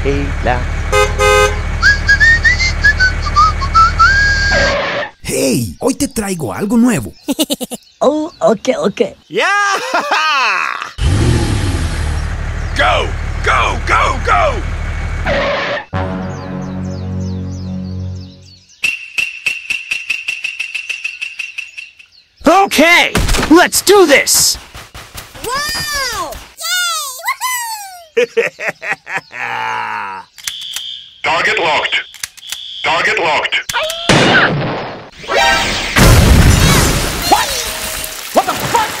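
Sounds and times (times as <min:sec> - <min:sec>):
person whistling a tune: 0:01.8 - 0:04.6.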